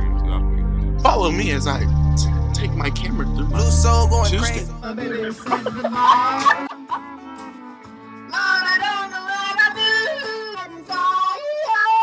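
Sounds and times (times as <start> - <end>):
music with low accompaniment: 0.0 - 9.9
person yodeling: 3.6 - 7.1.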